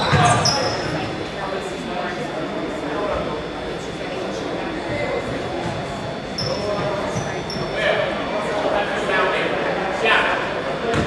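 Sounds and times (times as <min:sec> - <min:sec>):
sneaker squeaks: 0:00.0 - 0:01.1, 0:04.9 - 0:07.8
crowd chatter echoing: 0:00.0 - 0:11.0.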